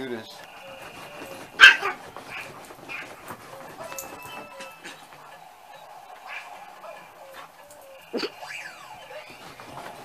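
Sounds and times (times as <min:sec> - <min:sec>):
dog barking: 0:00.4 - 0:10.0.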